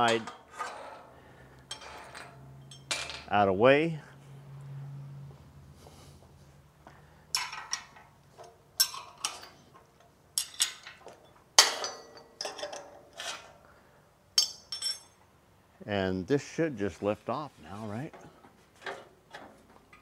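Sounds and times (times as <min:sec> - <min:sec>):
metal tools clinking on metal: 0:00.0 - 0:01.0, 0:01.6 - 0:03.4, 0:07.3 - 0:13.6, 0:14.4 - 0:15.3.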